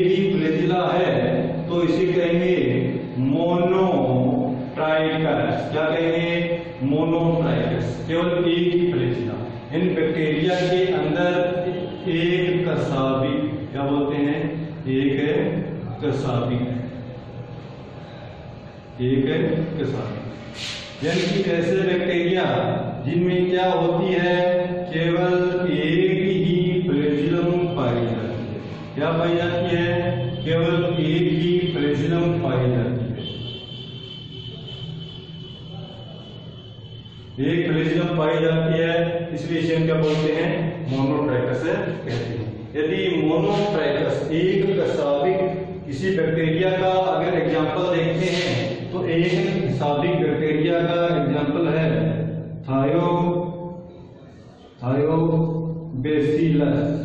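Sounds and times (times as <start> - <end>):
man chanting drawn-out syllables: 21.0 - 33.1, 37.4 - 53.8.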